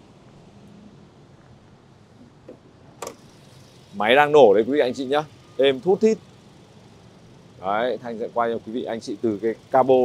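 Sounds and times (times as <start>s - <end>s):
car engine idling quietly: 0.0s - 10.0s
car bonnet click: 2.4s - 3.2s.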